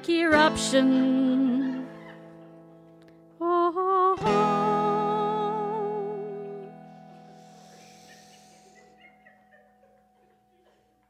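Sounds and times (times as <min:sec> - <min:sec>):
acoustic guitar chord ringing: 0:03.8 - 0:10.5.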